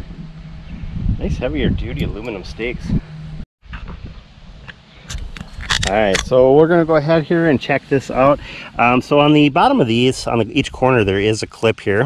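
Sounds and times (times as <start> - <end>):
wind rumble on microphone: 0.0 - 6.6
man speaking: 1.2 - 3.0, 5.8 - 12.0
camera handling noise: 5.1 - 6.3.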